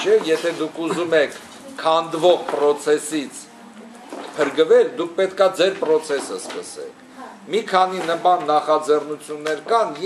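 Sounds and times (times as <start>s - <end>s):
man talking: 0.0s - 3.5s, 4.4s - 10.0s.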